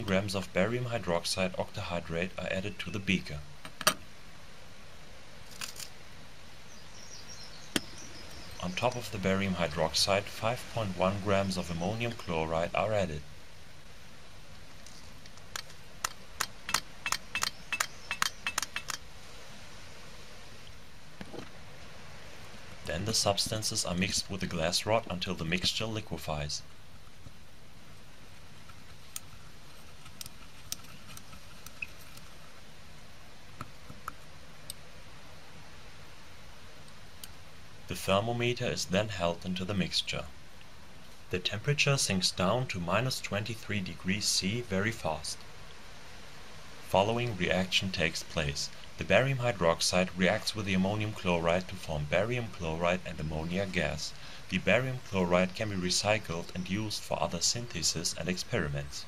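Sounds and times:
steady low hiss: 0.0 - 59.0
sharp click: 15.6 - 19.0.

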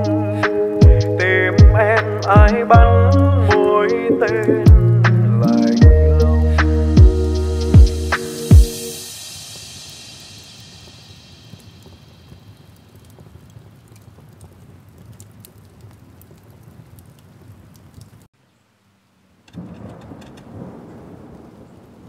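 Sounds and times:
rain hiss with small crackles: 9.0 - 22.0.

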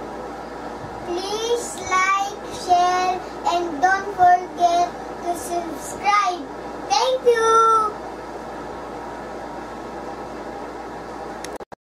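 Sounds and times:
steady background hiss: 0.0 - 11.6.

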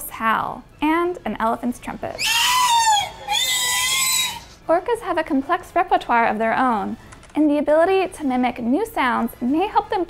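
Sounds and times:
killer whale calling: 2.2 - 4.6.

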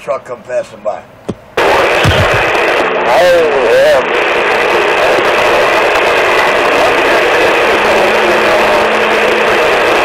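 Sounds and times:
radio static hiss: 1.5 - 10.0.

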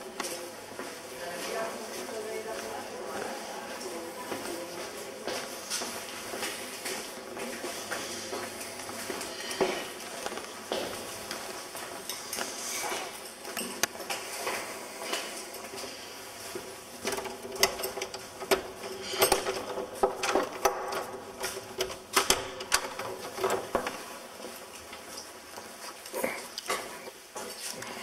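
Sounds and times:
key clicking and rattling in door lock: 17.0 - 23.7.

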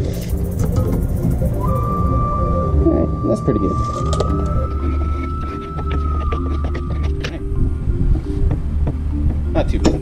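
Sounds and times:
thin high tone: 0.0 - 8.0
background music with bass line: 0.0 - 10.0.

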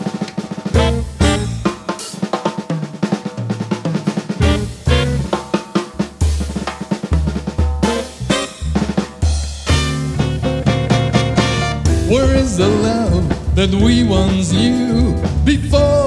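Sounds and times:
bass drum: 0.0 - 1.9, 4.4 - 16.0
snare and tom strokes: 0.0 - 15.7.

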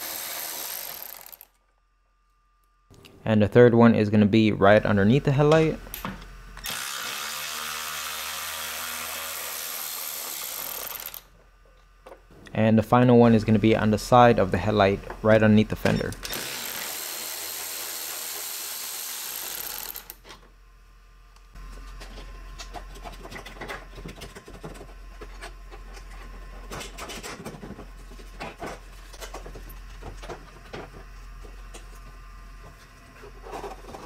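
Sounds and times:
power tool running: 0.0 - 1.5, 6.6 - 11.3, 16.2 - 20.2.

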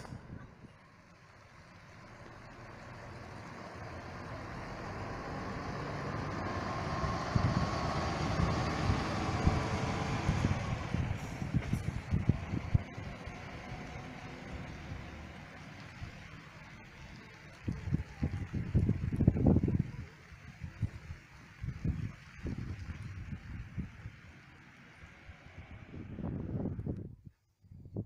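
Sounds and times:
bus driving past: 0.0 - 27.0.

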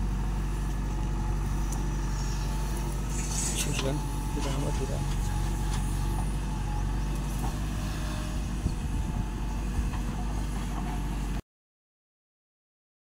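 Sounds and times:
diesel engine running: 0.0 - 11.4.

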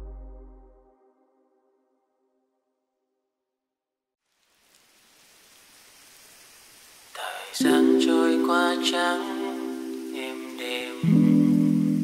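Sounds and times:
faint rain-like hiss: 4.2 - 12.0.

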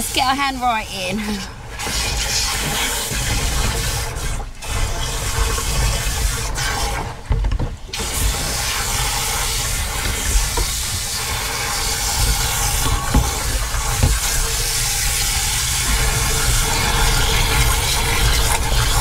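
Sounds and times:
hose nozzle spraying water: 7.9 - 19.0.

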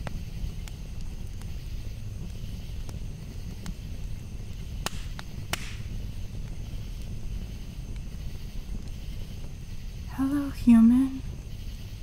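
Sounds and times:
low rumble of flames: 0.0 - 12.0
wood crackling and popping: 0.0 - 12.0.

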